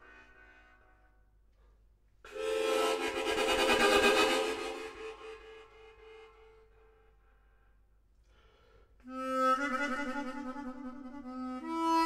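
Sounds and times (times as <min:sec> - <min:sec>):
harmonica sustained notes: 0:02.3 - 0:06.6, 0:09.0 - 0:12.0.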